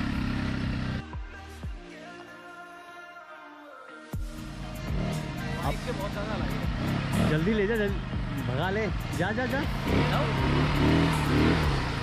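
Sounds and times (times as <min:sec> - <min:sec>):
small engine running: 0:00.0 - 0:01.0, 0:05.8 - 0:12.0
background music: 0:00.0 - 0:12.0.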